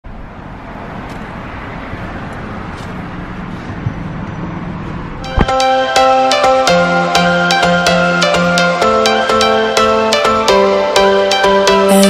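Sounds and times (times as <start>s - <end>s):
motor vehicle noise: 0.0s - 11.9s
music of short distinct notes: 5.2s - 12.0s.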